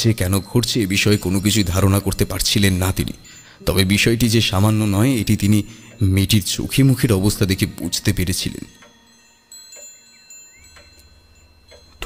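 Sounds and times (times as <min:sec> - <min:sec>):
ringing chime-like tones: 0:00.0 - 0:12.0
soft ticks: 0:08.7 - 0:09.0, 0:09.7 - 0:12.0.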